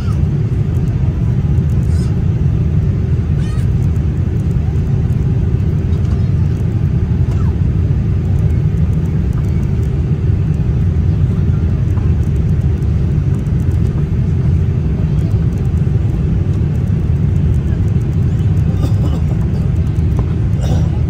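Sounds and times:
jet engine and airflow rumble: 0.0 - 21.0.

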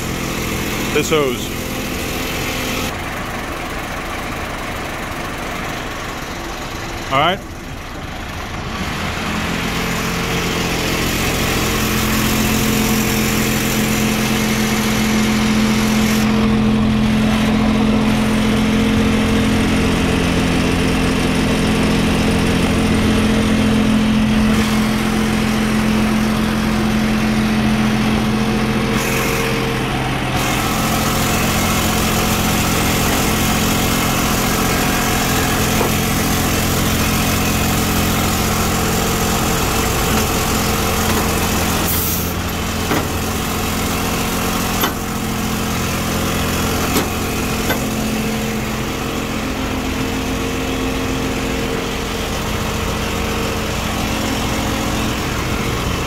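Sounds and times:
truck engine running: 0.0 - 56.0
fuel pumping through hose: 30.4 - 48.6.

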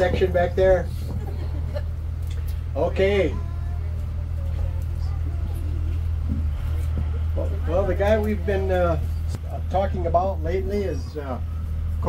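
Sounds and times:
bus engine drone: 0.0 - 12.0
faint passenger voices: 0.0 - 12.0.

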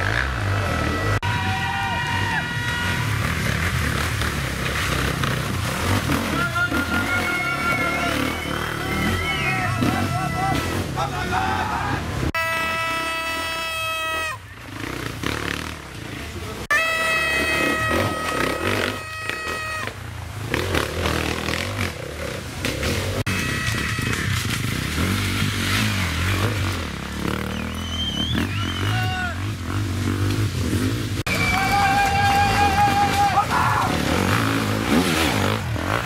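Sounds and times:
motorcycle engines revving hard: 0.0 - 13.6, 14.5 - 36.0.

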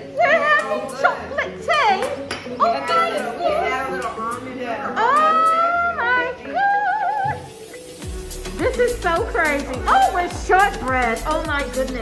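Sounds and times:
women's wordless exclamations: 9.8 - 10.6.

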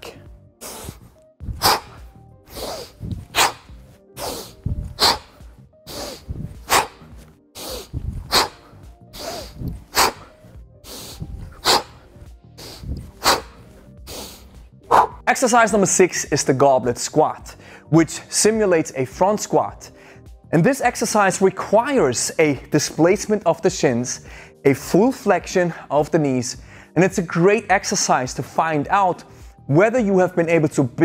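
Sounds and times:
faint background music: 0.0 - 31.0
person exhaling forcefully: 0.6 - 15.2.

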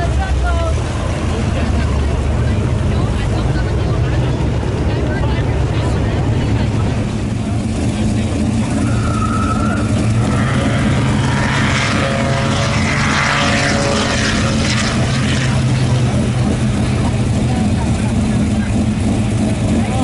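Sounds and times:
car engines idling: 0.0 - 20.0
rushing noise: 0.0 - 20.0.

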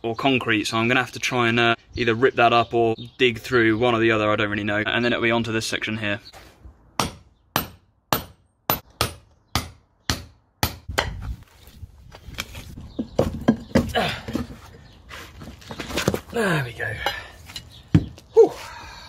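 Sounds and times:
bar scraping and crunching rubble: 12.2 - 16.4.

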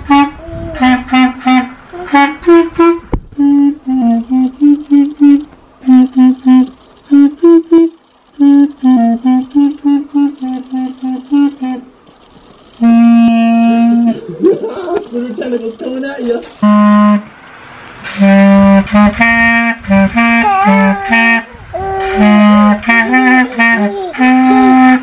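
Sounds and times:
clarinet playing a simple tune: 0.0 - 11.9, 12.8 - 14.1, 18.2 - 25.0.

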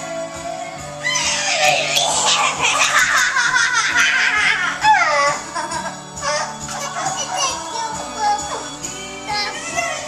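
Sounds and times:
young child squealing: 1.0 - 2.6.

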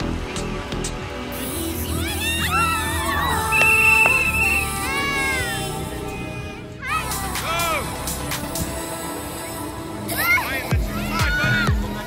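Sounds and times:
background music with low bass: 0.0 - 12.0.

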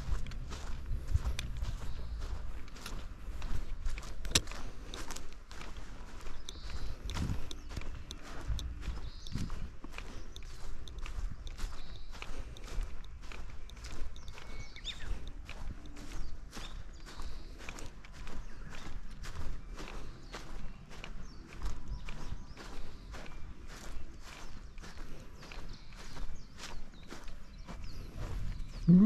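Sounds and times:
footsteps on dry grass: 0.0 - 29.0.

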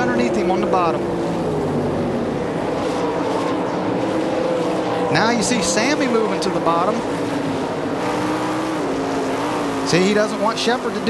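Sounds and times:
race car engines drone: 0.0 - 11.0.

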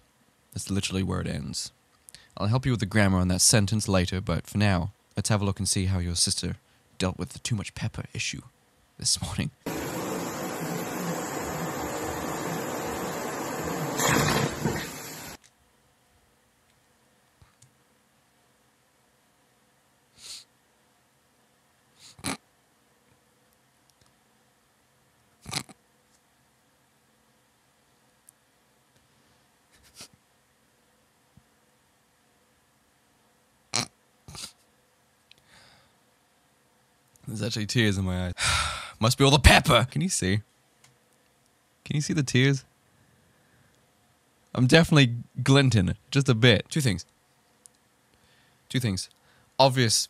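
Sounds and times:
vacuum cleaner running: 9.7 - 15.4
vacuum sucking up food: 9.7 - 15.4.

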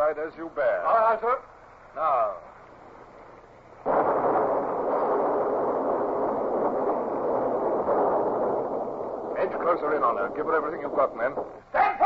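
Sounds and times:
cannon gunfire: 3.8 - 11.6.

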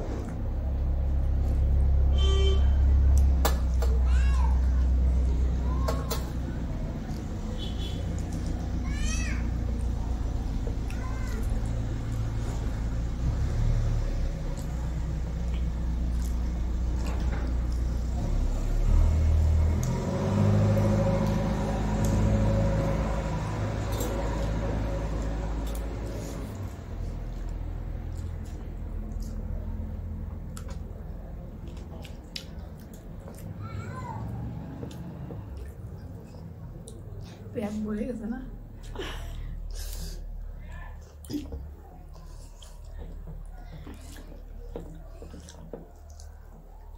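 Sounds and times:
chewing: 9.4 - 18.4, 19.0 - 33.6, 34.2 - 37.5, 39.7 - 46.9.

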